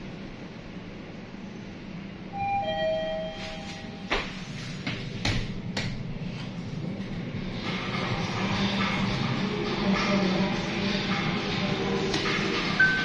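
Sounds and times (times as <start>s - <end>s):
elevator car hum: 0.0s - 13.0s
elevator two-tone chime: 2.3s - 4.2s, 12.8s - 13.0s.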